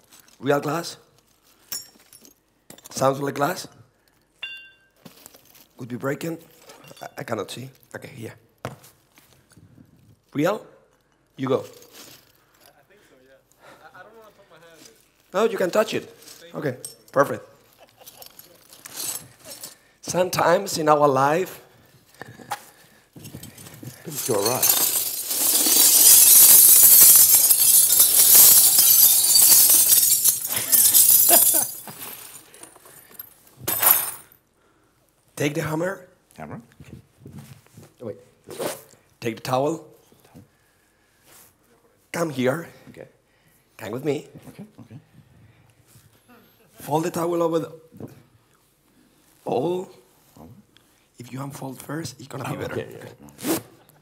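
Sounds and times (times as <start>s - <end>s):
glass bottle clink: 4.4s - 5.0s, 6.8s - 7.2s, 24.0s - 32.1s.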